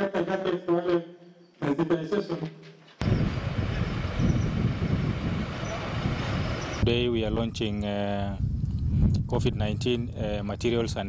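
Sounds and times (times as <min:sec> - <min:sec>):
man talking: 0:00.0 - 0:02.6, 0:06.8 - 0:08.4, 0:09.2 - 0:11.0
low outdoor rumble and rush: 0:03.0 - 0:11.0.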